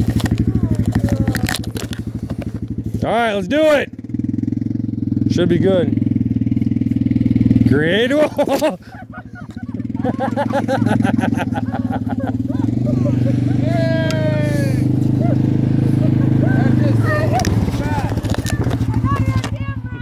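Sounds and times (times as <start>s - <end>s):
atv engine running: 0.0s - 20.0s
laughter: 8.1s - 14.0s, 15.1s - 17.6s
person yelling: 12.5s - 15.4s, 16.3s - 18.1s.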